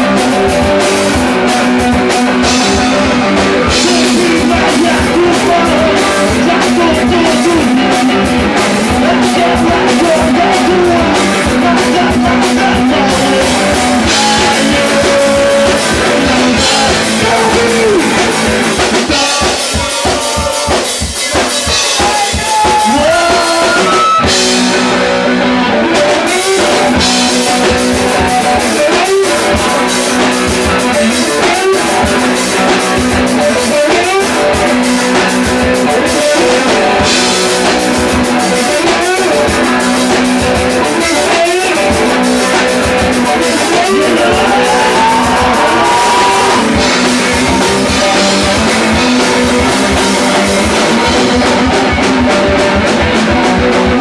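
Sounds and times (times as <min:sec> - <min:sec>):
rock band playing live: 0:00.0 - 0:54.0
electric guitar sliding notes: 0:22.6 - 0:54.0.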